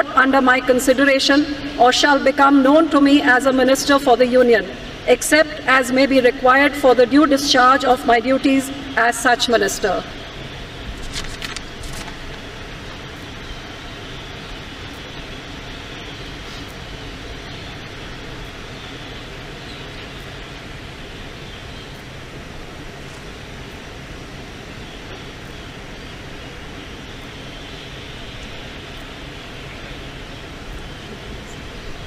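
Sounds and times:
outdoor rumble and hiss: 0:00.0 - 0:32.0.

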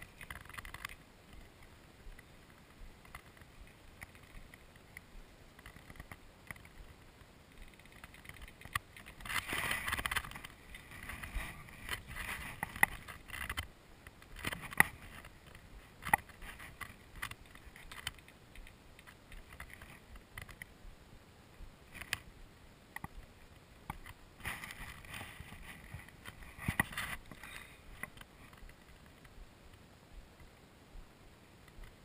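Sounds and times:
sharp clicks and knocks: 0:00.0 - 0:20.7, 0:22.9 - 0:29.8
camera handling rustling: 0:07.6 - 0:13.7, 0:23.9 - 0:29.3.

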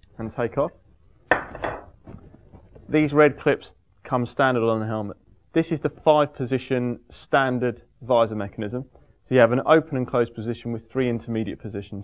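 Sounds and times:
sharp knock: 0:01.3 - 0:01.9.

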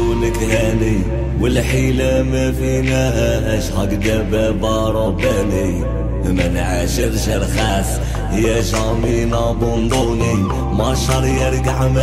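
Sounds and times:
pop-rap song with deep bass: 0:00.0 - 0:12.0.

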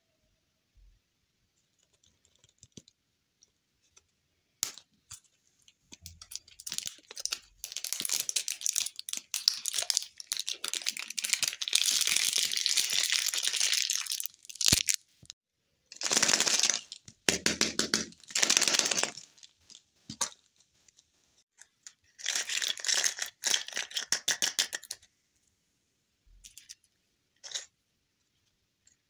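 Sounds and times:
plastic wrapper crinkling: 0:06.2 - 0:15.4.

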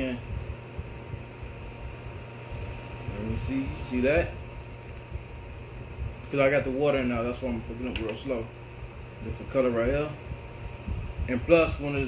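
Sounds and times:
small fan airy hiss: 0:00.0 - 0:12.0.

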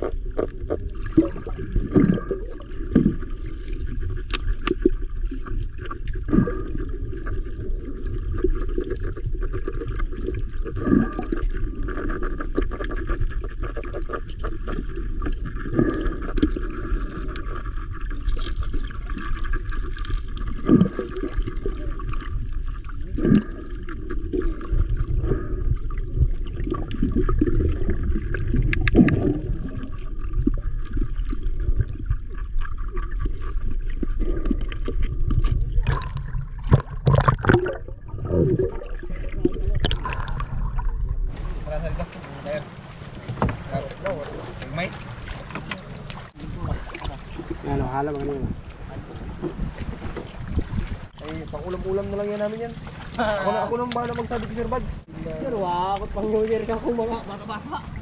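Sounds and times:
underwater knocks and thumps: 0:00.0 - 0:53.2
muffled underwater rumble: 0:00.0 - 0:58.0
water sloshing: 0:00.0 - 0:58.0.

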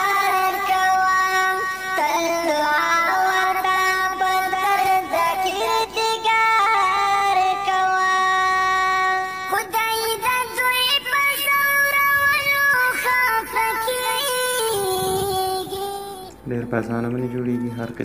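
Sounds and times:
person singing gliding melody: 0:00.0 - 0:18.0.

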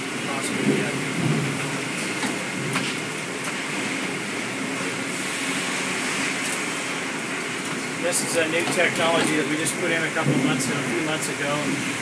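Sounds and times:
log-handling machinery running: 0:00.0 - 0:12.0.

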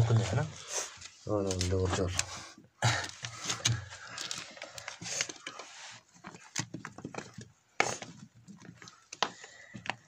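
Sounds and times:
stones clacking and scraping: 0:03.0 - 0:10.0.

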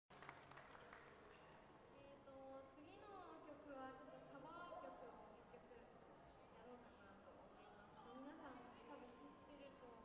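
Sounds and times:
faint scattered applause: 0:00.1 - 0:01.8.

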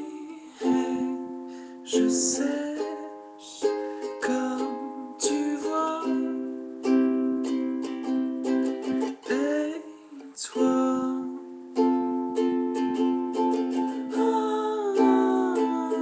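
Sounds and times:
ukulele strumming chords: 0:00.0 - 0:16.0.

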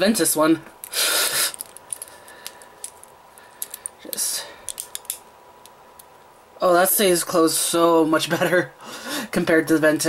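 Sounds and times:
rustling hiss: 0:00.8 - 0:05.2
plastic toy parts clicking: 0:01.5 - 0:04.0, 0:04.7 - 0:06.1.

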